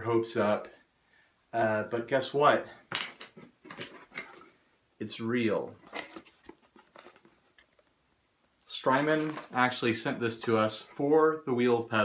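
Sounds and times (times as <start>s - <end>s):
cardboard scraping and rustling: 5.8s - 7.8s, 9.0s - 9.7s.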